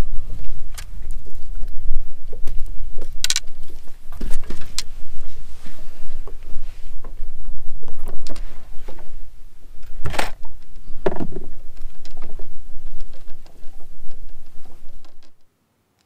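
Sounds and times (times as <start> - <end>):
wind buffeting microphone: 0.0 - 15.4.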